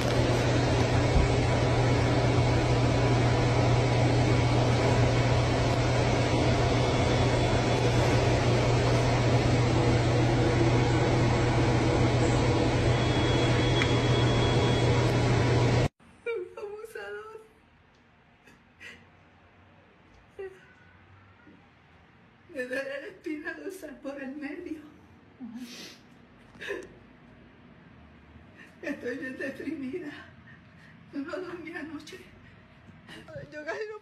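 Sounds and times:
low hum: 0:00.0 - 0:16.3.

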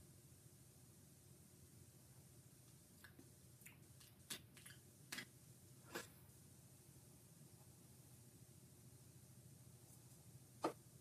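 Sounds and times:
faint clicks and smacks: 0:02.6 - 0:05.4.

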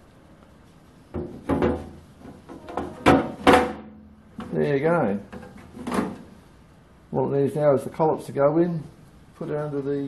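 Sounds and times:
wood knocking and scraping metal: 0:01.1 - 0:04.6.

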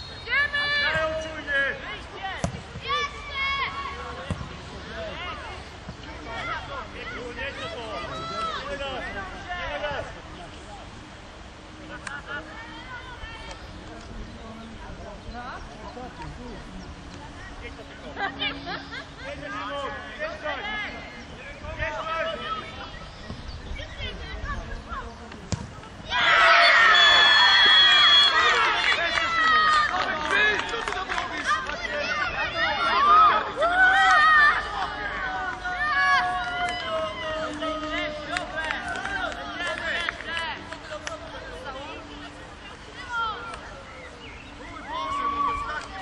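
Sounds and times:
football kick thump: 0:25.4 - 0:25.9
people shouting: 0:26.0 - 0:29.9, 0:44.7 - 0:46.0.

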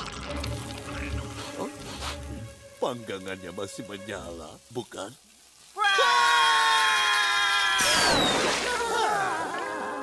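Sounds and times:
cartoon voices screaming: 0:05.8 - 0:10.0.

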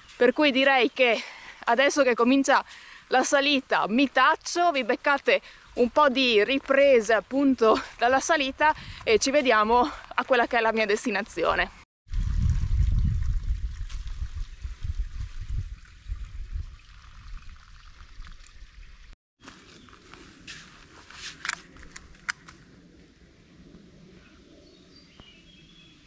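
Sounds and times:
low rumble on microphone: 0:12.1 - 0:19.1
footsteps crunching dry leaves: 0:19.4 - 0:21.9.

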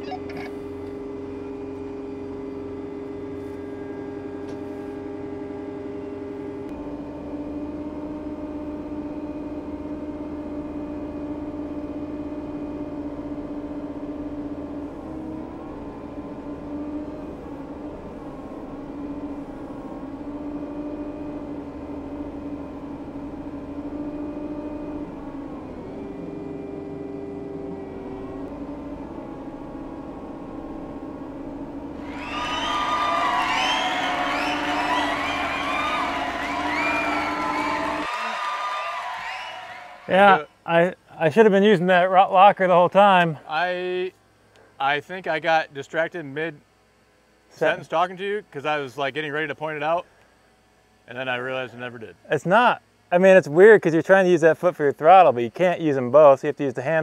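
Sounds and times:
diesel engines under load: 0:00.0 - 0:45.5.

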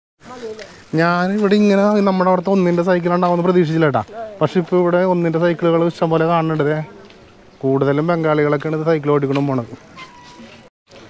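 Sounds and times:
man speaking: 0:00.4 - 0:07.0, 0:07.6 - 0:09.8.

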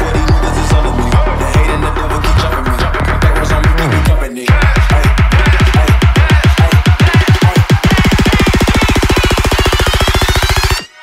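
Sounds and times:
electronic drum roll: 0:00.0 - 0:10.6.

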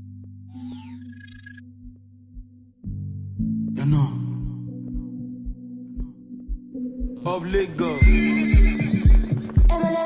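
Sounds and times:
deep kick drum beat: 0:04.4 - 0:07.2
horse whinnying: 0:08.1 - 0:09.5.

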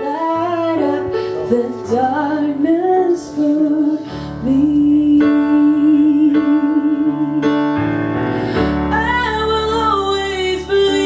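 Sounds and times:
woman singing: 0:00.0 - 0:07.8, 0:08.7 - 0:11.0.

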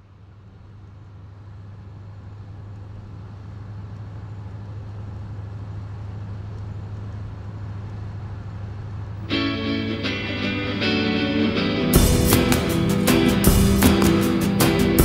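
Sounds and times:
low droning rumble with hiss: 0:00.0 - 0:15.0.

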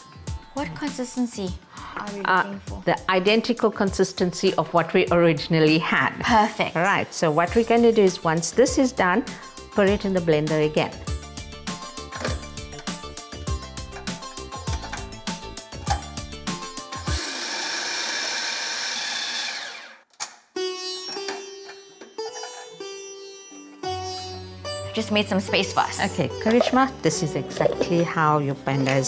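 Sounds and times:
background music: 0:00.0 - 0:18.0, 0:20.6 - 0:29.0
food processor blending: 0:16.9 - 0:20.1.

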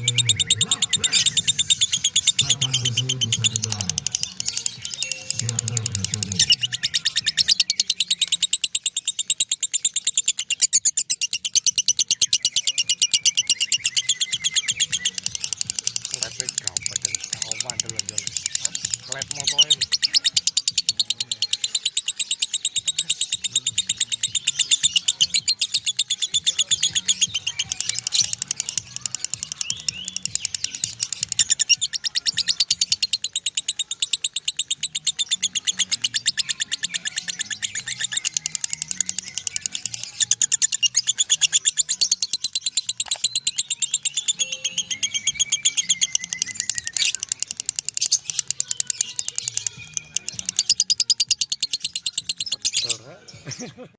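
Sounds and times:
bird rapid shrill chirps: 0:00.0 - 0:53.0.

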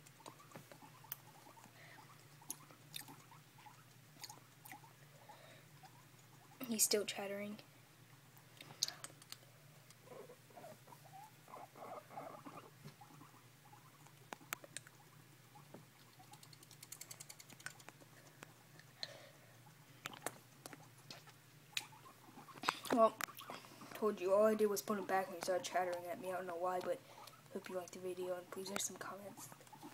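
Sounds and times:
guinea pig chattering its teeth: 0:00.0 - 0:07.1, 0:08.8 - 0:19.0, 0:19.6 - 0:29.9.

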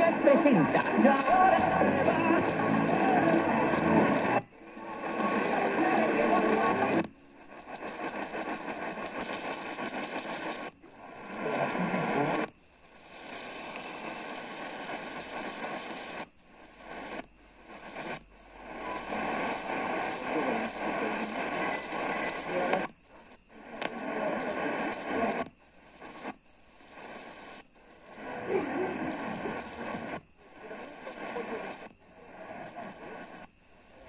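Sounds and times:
am radio tuning: 0:00.0 - 0:34.0
broadcast talk on radio: 0:00.0 - 0:34.0
radio hiss and static: 0:00.0 - 0:34.0.

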